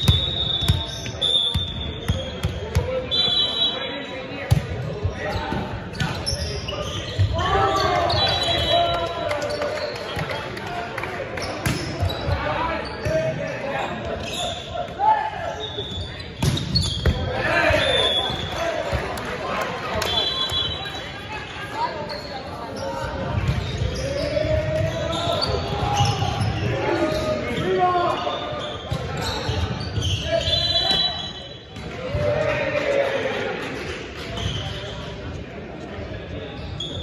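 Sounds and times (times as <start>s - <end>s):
referee's whistle: 0.0s - 4.1s, 6.0s - 9.2s, 15.5s - 18.7s, 20.0s - 21.1s, 23.6s - 31.8s.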